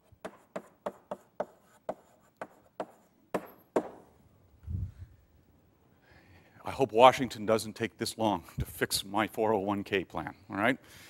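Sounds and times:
chalk tapping on blackboard: 0.0 - 4.0.

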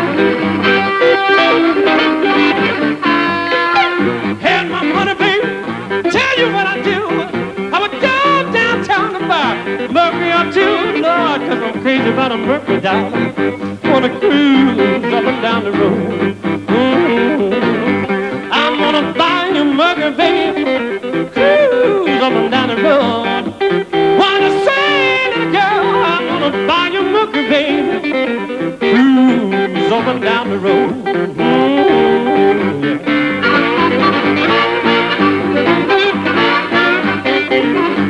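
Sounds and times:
amplified blues harmonica: 0.0 - 38.0
guitar accompaniment: 0.0 - 38.0
man singing with vibrato: 0.0 - 38.0.

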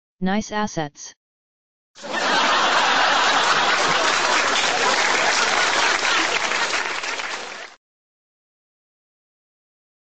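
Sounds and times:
audience applause: 2.0 - 7.8.

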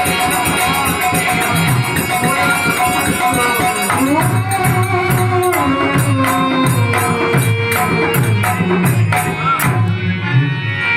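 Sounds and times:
high percussive strikes: 0.0 - 10.2
dholak beat: 0.0 - 10.9
harmonium melody: 0.0 - 10.9.

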